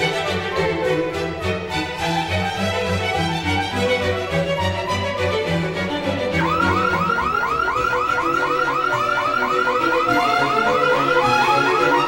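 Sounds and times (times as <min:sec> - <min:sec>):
car alarm warbling chirps: 0:06.4 - 0:12.0.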